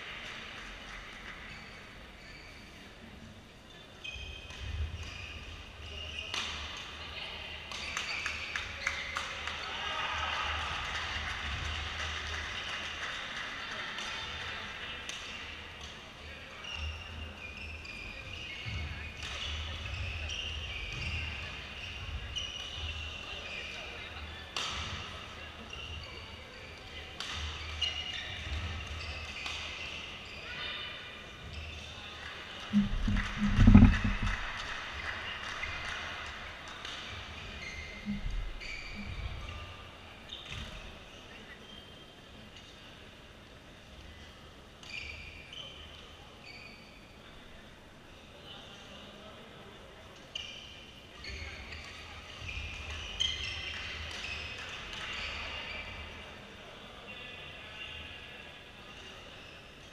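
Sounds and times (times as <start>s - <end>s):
background voices: 32.7s - 34.6s.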